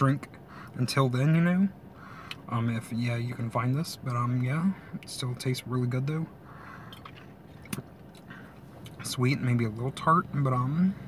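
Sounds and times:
sipping and swallowing: 0:06.8 - 0:09.0.

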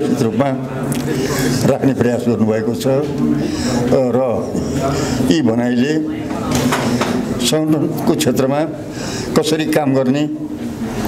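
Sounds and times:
man speaking: 0:00.0 - 0:06.4, 0:07.4 - 0:10.6.

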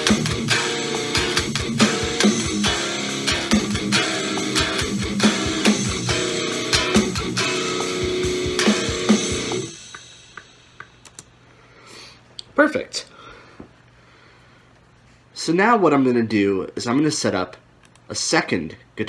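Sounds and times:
distorted electric guitar chords: 0:00.0 - 0:11.1
drum track: 0:00.0 - 0:11.4.

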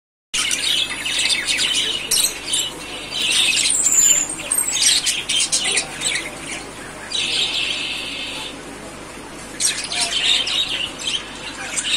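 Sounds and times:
budgerigars chirping: 0:00.4 - 0:08.6, 0:09.5 - 0:11.9.

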